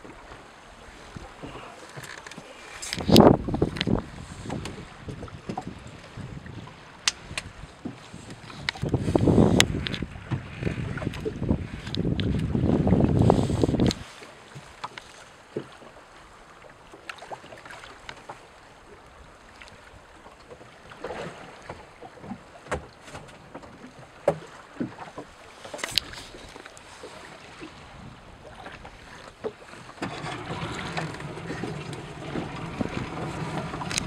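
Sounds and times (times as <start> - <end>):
water moving along hull: 0.0 - 34.0
wind buffeting microphone: 2.8 - 14.1, 25.8 - 29.4, 30.0 - 34.0
faint clicks: 33.8 - 34.0.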